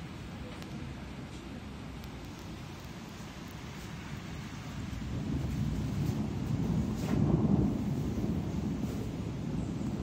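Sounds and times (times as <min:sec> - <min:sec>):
rolling thunder: 0:04.0 - 0:10.0.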